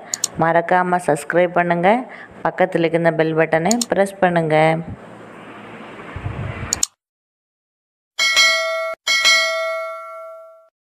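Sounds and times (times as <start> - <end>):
click: 0.1 - 0.3, 3.7 - 3.9, 6.7 - 7.0
bell dings: 8.2 - 10.7.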